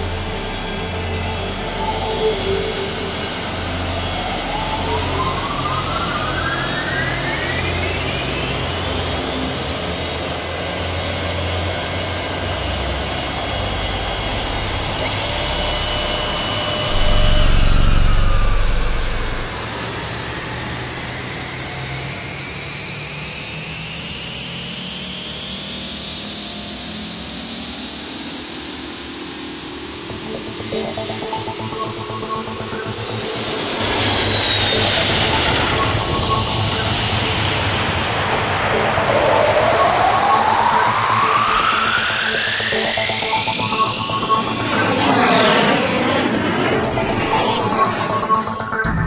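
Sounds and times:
jet engines spooling up: 0.0s - 22.7s, 28.2s - 49.0s
low rumble: 16.8s - 19.7s.

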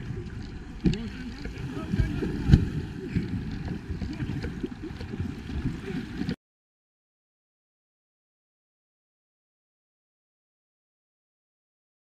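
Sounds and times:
water splashing and sloshing: 0.0s - 6.4s
sharp splashes: 0.8s - 6.3s.

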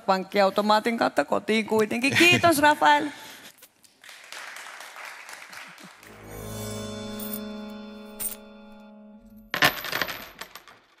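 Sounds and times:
held musical chord: 6.1s - 9.5s.

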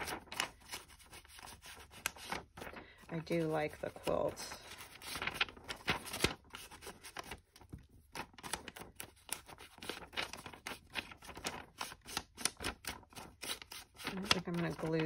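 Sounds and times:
paper rustling: 0.0s - 15.0s.

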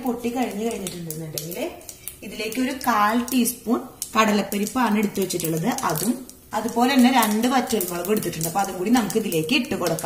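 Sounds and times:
woman speaking: 0.0s - 10.0s.

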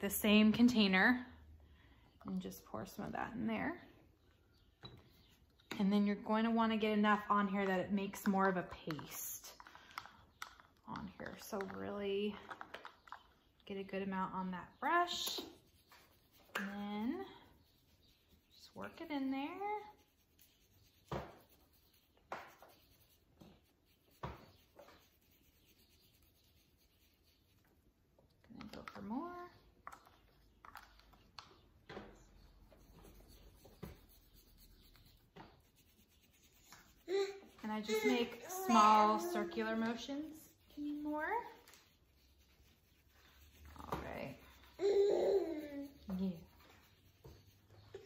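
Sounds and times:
toothbrush scrubbing fabric: 14.8s - 27.8s, 32.4s - 48.0s.

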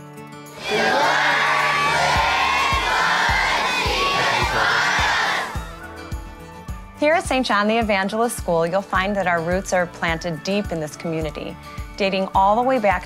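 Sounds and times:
background music with steady beat: 0.0s - 13.0s
children shouting and cheering: 0.5s - 6.0s.

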